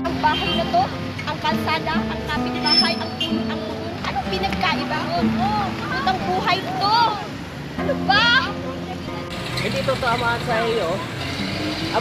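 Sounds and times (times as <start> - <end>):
background music: 0.0 - 9.8
street traffic noise: 0.0 - 12.0.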